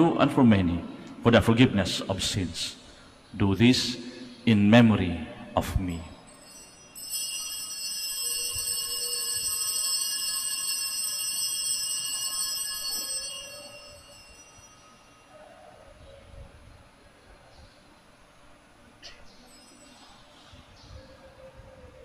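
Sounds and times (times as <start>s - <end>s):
altar bells ringing: 5.8s - 16.0s, 19.4s - 20.4s.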